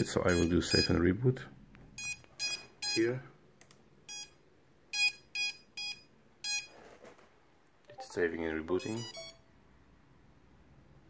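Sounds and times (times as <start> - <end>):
short motor beeps: 8.8 - 9.4.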